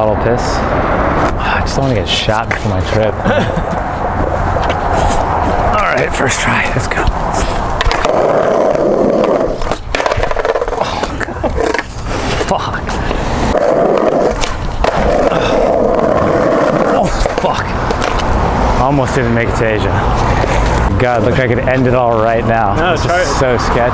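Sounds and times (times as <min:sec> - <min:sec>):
skateboard wheels rolling: 0:02.1 - 0:23.9
skateboard clacking on ground: 0:06.7 - 0:18.4.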